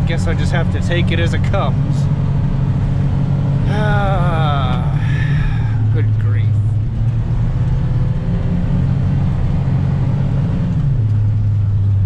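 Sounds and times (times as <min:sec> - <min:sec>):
tractor diesel engine drone: 0:00.0 - 0:12.0.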